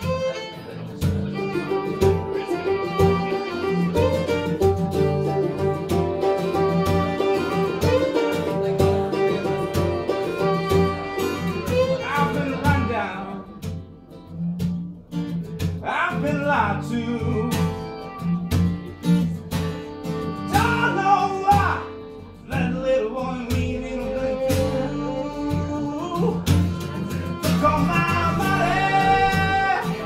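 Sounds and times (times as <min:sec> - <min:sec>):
fiddle guitar and mandolin playing: 0:00.0 - 0:30.0
person singing: 0:07.0 - 0:13.6, 0:15.8 - 0:18.4, 0:20.4 - 0:30.0.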